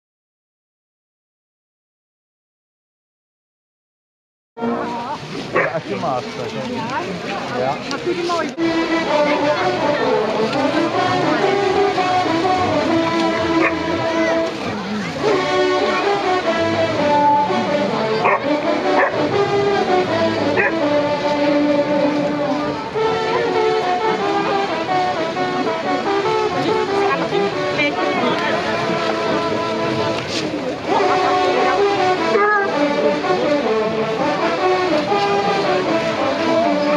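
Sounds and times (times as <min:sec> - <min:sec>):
hounds baying: 0:05.5 - 0:05.9, 0:13.3 - 0:14.4, 0:18.0 - 0:19.4, 0:20.4 - 0:21.0
hounds yelping and whining: 0:13.6 - 0:13.9, 0:18.2 - 0:19.2, 0:20.5 - 0:20.9.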